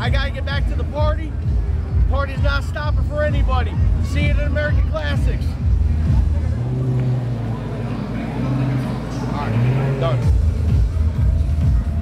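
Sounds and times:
car engine low drone: 0.0s - 12.0s
crowd chatter: 0.0s - 12.0s.

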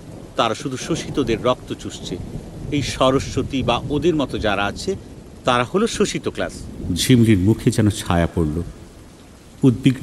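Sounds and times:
low rumbling thunder: 0.0s - 10.0s
rain: 0.0s - 10.0s.

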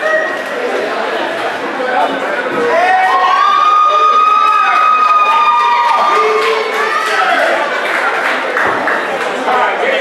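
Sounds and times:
crowd cheering and shouting: 0.0s - 1.1s, 2.0s - 7.9s.

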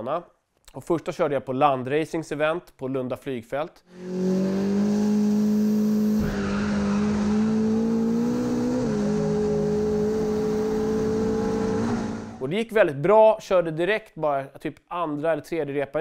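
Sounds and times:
engine revving high: 3.9s - 12.4s.

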